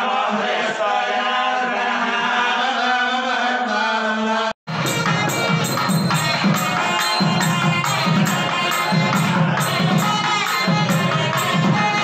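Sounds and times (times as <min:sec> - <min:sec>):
music with percussion: 0:04.7 - 0:12.0.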